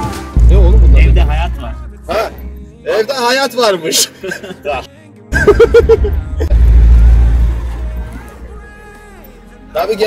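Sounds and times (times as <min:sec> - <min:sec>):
off-road vehicle rumble: 0:05.6 - 0:08.5.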